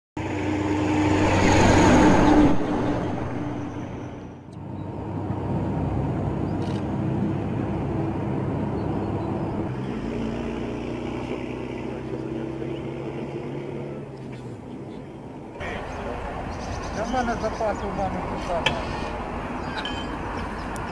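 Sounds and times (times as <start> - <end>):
heavy vehicles engine drone: 0.2 - 20.9.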